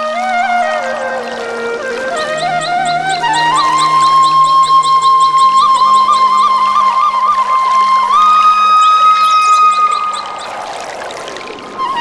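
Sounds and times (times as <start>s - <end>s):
flute-like melody: 0.0s - 12.0s.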